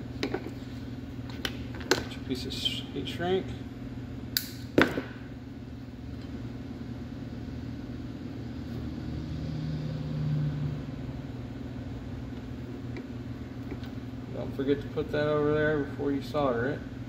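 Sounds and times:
low rumble with hum: 0:00.0 - 0:17.0.

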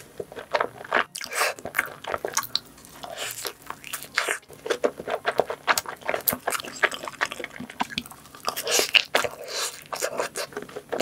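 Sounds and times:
biting and chewing pizza: 0:00.0 - 0:11.0.

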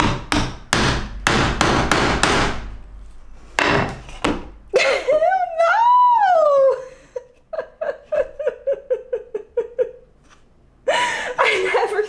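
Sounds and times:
metal tool knocking on wood: 0:00.0 - 0:02.7, 0:03.6 - 0:04.6.

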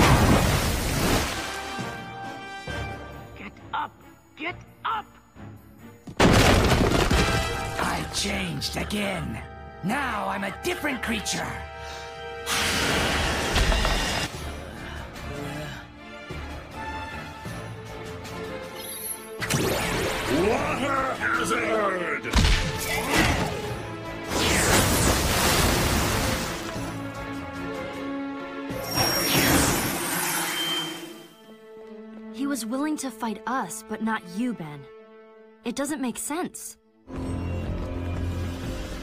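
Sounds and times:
background music: 0:00.0 - 0:39.0.

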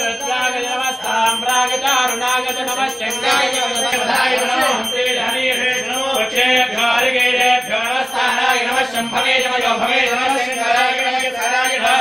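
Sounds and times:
man chanting mantras: 0:00.0 - 0:12.0.

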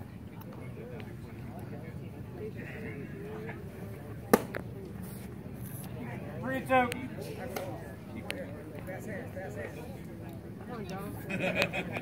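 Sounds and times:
faint background voices: 0:00.0 - 0:12.0
baseball smacking leather mitt: 0:04.3 - 0:04.6.

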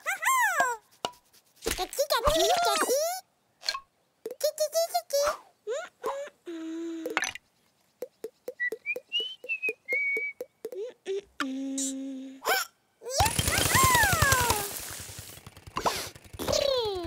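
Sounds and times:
quick even ticks: 0:07.0 - 0:10.9
whistled tune: 0:08.5 - 0:10.5.

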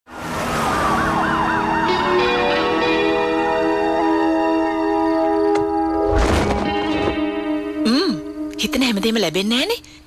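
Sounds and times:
police siren yelping: 0:00.2 - 0:06.0
sustained music chords: 0:01.2 - 0:06.0, 0:06.6 - 0:08.9.

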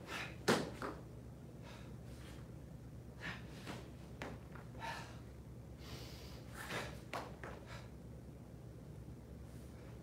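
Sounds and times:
low room hum: 0:00.0 - 0:10.0
person breathing sharply: 0:04.8 - 0:07.0.

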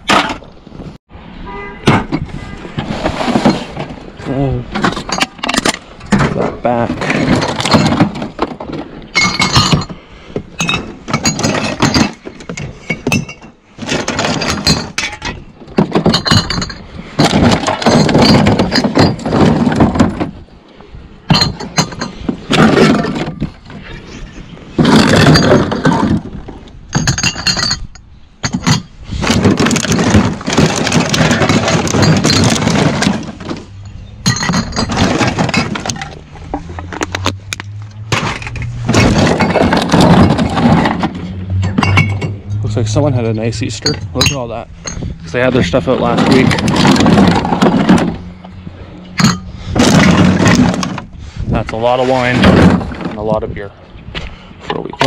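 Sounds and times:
bottles and cans clinking: 0:04.8 - 0:20.4, 0:21.3 - 0:23.6, 0:24.8 - 0:42.7, 0:43.4 - 0:51.1.

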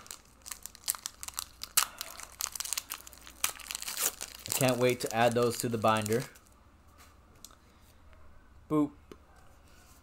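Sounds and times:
foil wrapper crinkling: 0:00.0 - 0:06.6.

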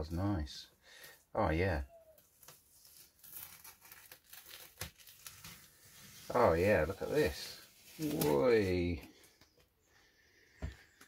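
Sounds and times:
masking tape peeling off: 0:02.2 - 0:08.7.

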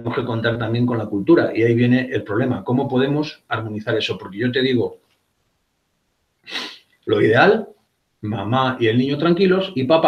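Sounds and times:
man speaking: 0:00.0 - 0:05.0, 0:06.5 - 0:10.0
man inhaling: 0:06.4 - 0:07.0.

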